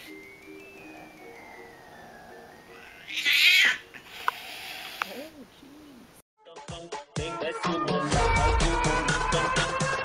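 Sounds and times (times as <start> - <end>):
quiet background music: 0.0 - 4.6
cat yowling: 2.7 - 3.8.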